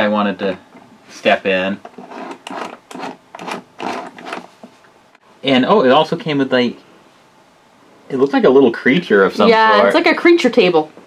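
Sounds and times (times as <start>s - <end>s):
plastic toy rattling and scraping: 1.8s - 4.6s.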